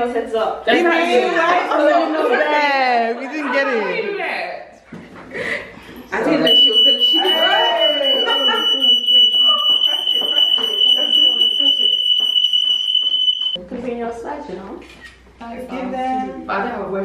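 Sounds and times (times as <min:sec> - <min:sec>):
smoke alarm tone: 0:06.4 - 0:13.6.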